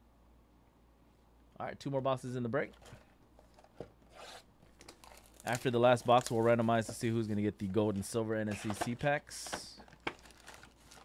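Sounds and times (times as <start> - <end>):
shrink wrap tearing: 4.2 - 6.6, 10.0 - 11.0.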